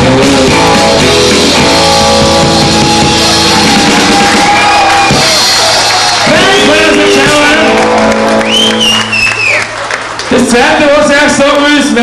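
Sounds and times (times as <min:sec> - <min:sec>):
live band playing: 0:00.0 - 0:11.5.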